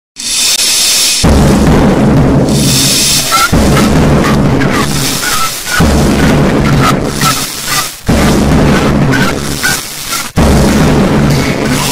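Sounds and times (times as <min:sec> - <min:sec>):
high-pitched hissing noise: 0:00.2 - 0:01.3, 0:02.5 - 0:10.4
punk band playing: 0:01.2 - 0:11.9.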